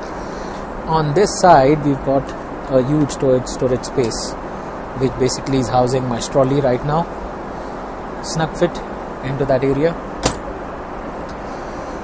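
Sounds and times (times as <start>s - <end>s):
airplane cabin noise: 0.0s - 12.0s.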